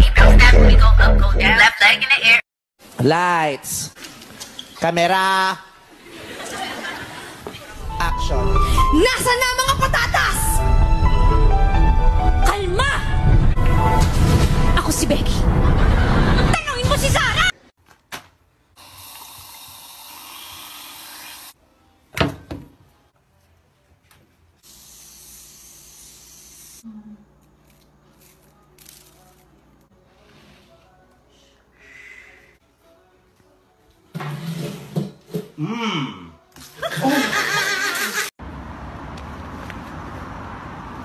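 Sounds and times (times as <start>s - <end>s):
person laughing loudly: 36.8s - 38.3s.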